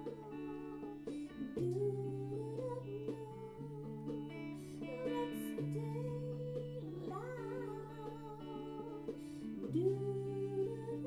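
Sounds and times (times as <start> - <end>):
electric guitar chords: 0.0 - 11.0
woman singing with vibrato: 0.0 - 11.0.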